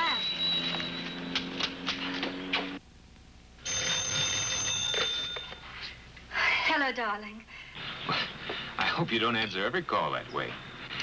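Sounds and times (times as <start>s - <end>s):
old telephone bell ringing: 0.0s - 2.1s, 3.6s - 6.0s.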